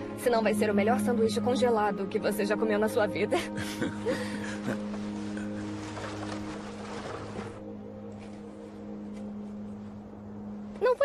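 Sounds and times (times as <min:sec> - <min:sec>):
sustained music tones: 0:00.0 - 0:11.0
sled scraping over snow: 0:04.5 - 0:07.7.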